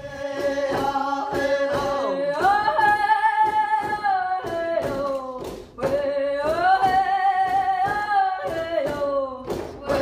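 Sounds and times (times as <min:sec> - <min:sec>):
person singing: 0:00.0 - 0:10.0.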